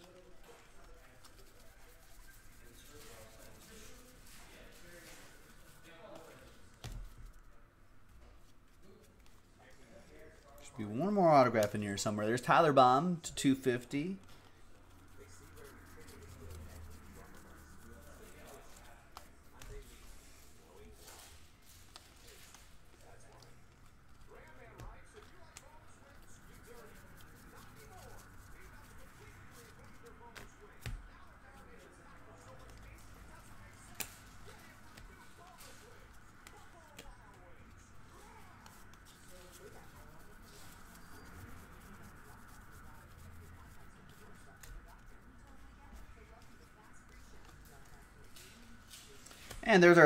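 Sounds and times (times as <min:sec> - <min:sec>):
cards sliding and flicking: 0:33.8 - 0:35.3.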